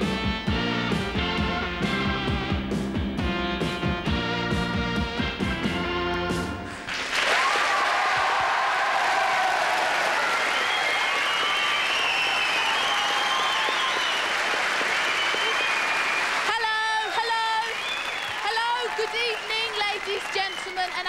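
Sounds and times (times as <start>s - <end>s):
rock music: 0.0s - 6.8s
audience applauding and cheering: 6.8s - 21.0s.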